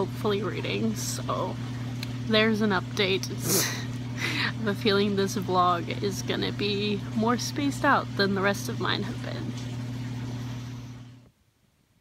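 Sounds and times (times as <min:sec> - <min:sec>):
laundry machine humming: 0:00.0 - 0:11.4.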